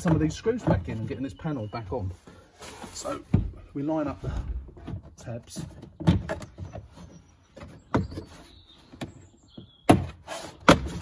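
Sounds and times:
plastic panel rubbing and handling: 0.0 - 11.0.

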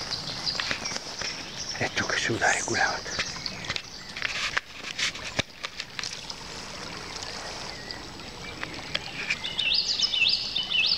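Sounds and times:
bird singing: 0.0 - 4.4, 7.0 - 10.9
flowing river water: 0.0 - 10.9.

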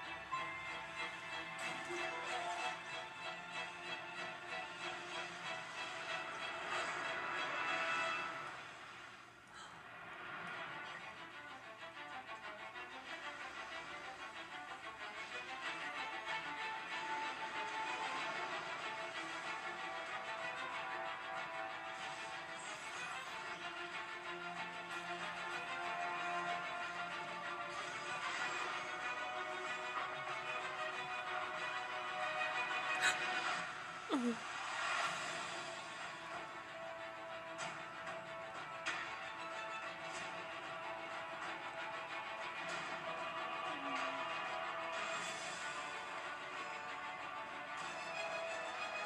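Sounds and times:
film music from a television: 0.0 - 49.0.

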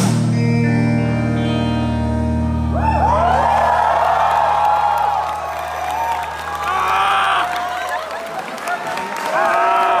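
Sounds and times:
crowd applauding and cheering: 2.6 - 10.0
people shouting: 5.8 - 8.0.

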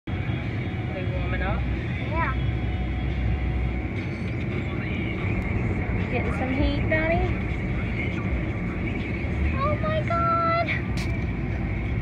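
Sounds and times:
engine idling: 0.1 - 12.0.

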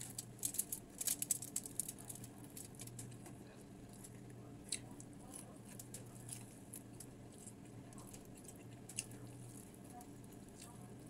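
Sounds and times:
fried fish crackling when torn: 0.0 - 3.3, 4.0 - 11.0
faint low hum: 0.0 - 11.0.

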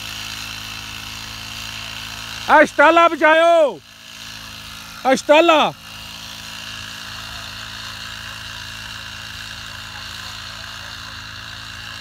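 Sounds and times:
small petrol engine running: 0.0 - 12.0.

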